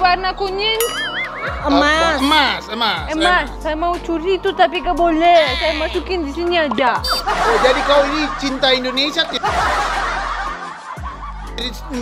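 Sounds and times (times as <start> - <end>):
background music: 0.0 - 12.0
person speaking: 1.6 - 3.6
people laughing: 7.0 - 12.0.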